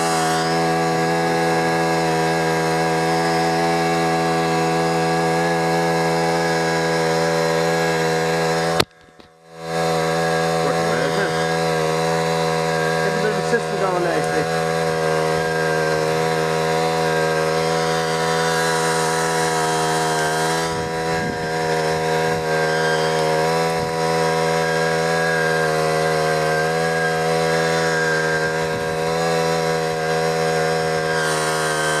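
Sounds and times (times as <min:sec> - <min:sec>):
small petrol engine running: 0:00.0 - 0:32.0.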